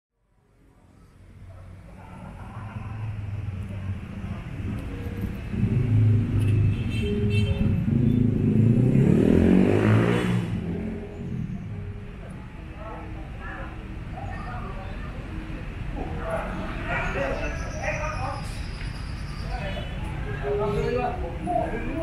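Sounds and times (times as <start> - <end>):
car engine accelerating past: 7.8 - 11.7.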